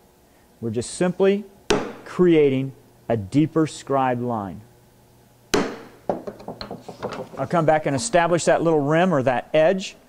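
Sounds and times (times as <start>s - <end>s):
mallet striking wood chisel: 1.7s - 2.0s, 5.5s - 7.4s.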